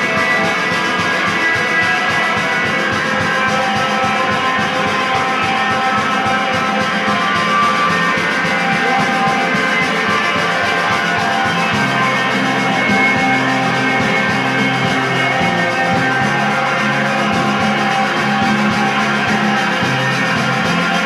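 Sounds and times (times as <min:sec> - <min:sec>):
rock band playing live: 0:00.0 - 0:21.0.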